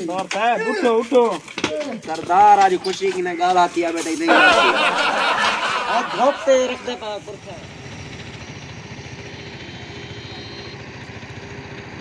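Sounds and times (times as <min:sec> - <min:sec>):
motorcycle engine running: 0:07.0 - 0:12.0.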